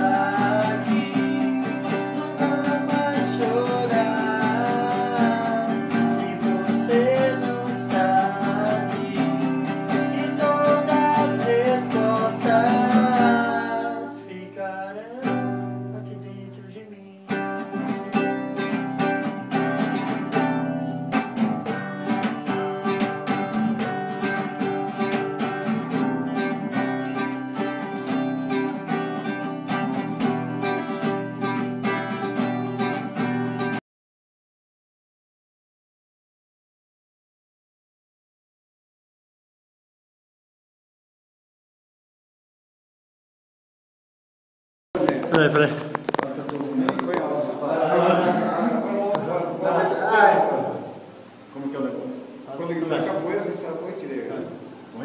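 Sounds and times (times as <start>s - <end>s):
acoustic guitars strumming: 0.0s - 33.8s, 45.0s - 51.5s.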